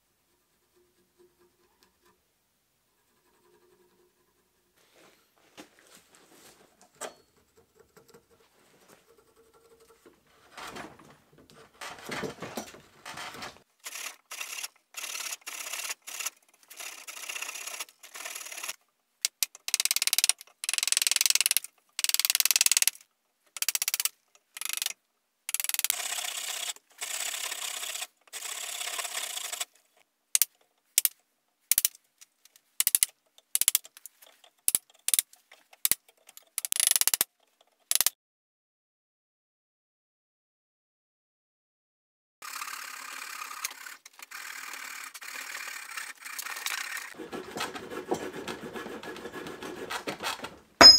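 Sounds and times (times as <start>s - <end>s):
chisel scraping wood: 46.4s - 50.6s.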